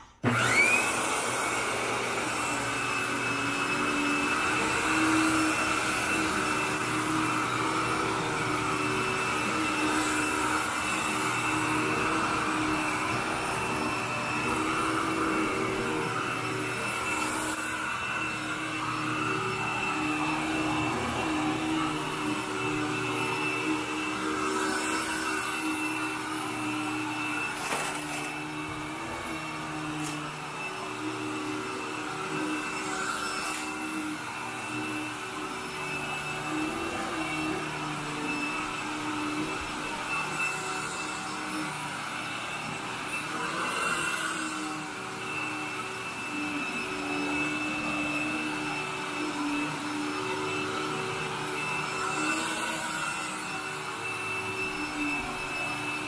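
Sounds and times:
upright vacuum running: 0.0s - 56.0s.

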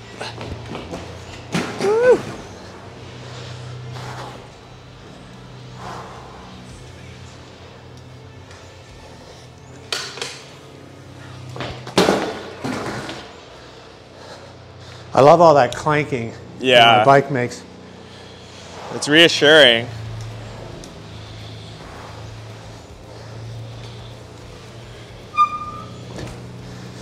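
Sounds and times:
low background music: 0.0s - 27.0s
bike clanking and knocking: 9.9s - 10.5s, 25.3s - 26.6s.

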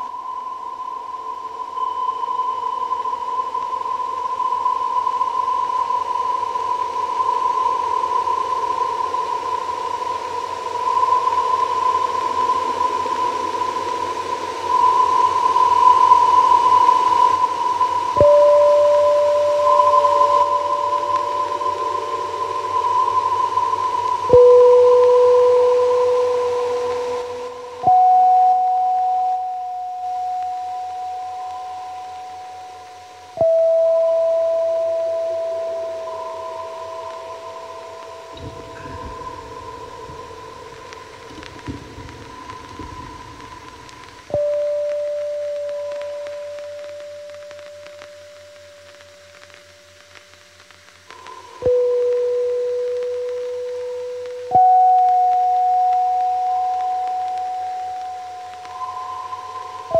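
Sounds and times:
hiss: 0.0s - 59.9s
steady high drone: 0.0s - 59.9s.

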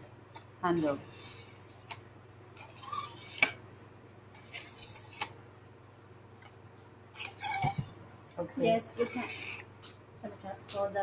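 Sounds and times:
handle sliding rub: 4.4s - 5.3s, 7.2s - 7.9s, 9.0s - 9.7s.

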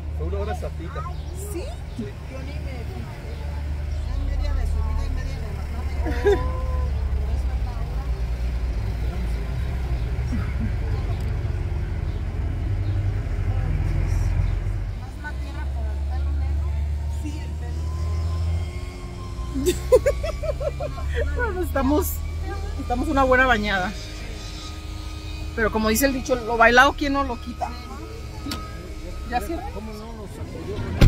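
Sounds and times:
car engine rumble inside cabin: 0.0s - 31.0s
voices: 0.0s - 31.0s.

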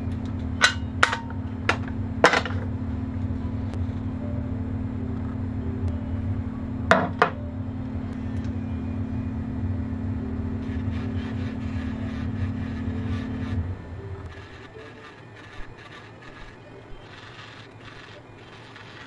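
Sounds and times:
engraving pen motor humming: 10.5s - 19.0s.

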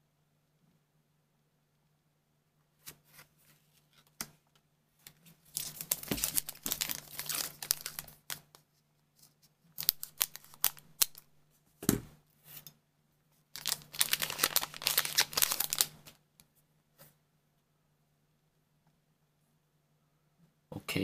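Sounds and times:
wrapper crinkling: 5.5s - 8.6s, 9.7s - 11.3s, 13.5s - 16.2s.

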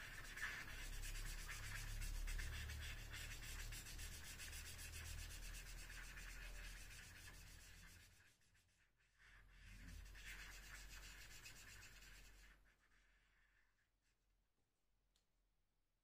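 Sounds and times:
marker rubbing on paper: 0.0s - 8.2s, 9.8s - 13.2s.

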